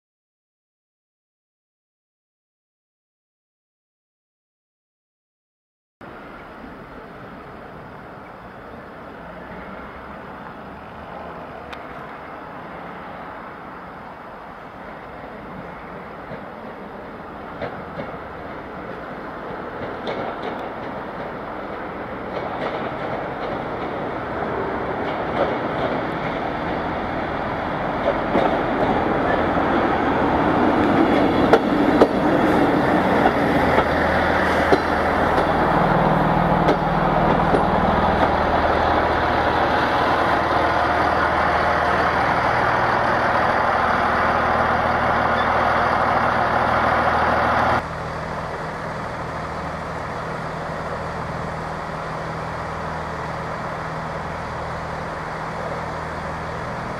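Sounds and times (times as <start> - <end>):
diesel train engines: 6.0 - 56.9
train wheels on rails: 6.8 - 56.9.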